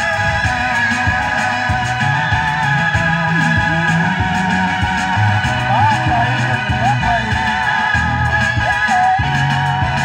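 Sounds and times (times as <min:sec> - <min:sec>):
electric keyboard music: 0:00.0 - 0:10.0.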